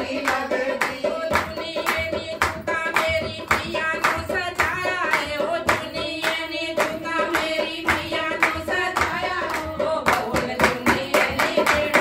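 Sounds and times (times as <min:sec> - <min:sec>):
hand drum: 0:00.0 - 0:12.0
women singing in unison: 0:00.0 - 0:12.0
hand claps: 0:00.1 - 0:12.0.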